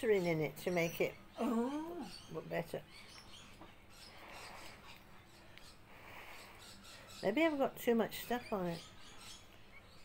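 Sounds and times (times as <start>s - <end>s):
soft breath hiss: 3.9s - 7.3s.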